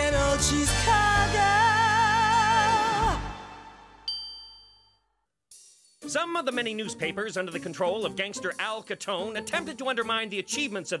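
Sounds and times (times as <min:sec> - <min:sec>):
bright high ding: 0:04.1 - 0:05.1.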